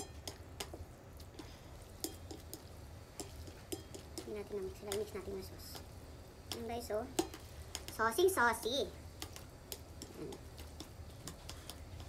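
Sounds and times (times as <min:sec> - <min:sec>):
chopsticks clicking on a plate: 0:00.0 - 0:04.3, 0:06.5 - 0:08.0, 0:09.2 - 0:12.0.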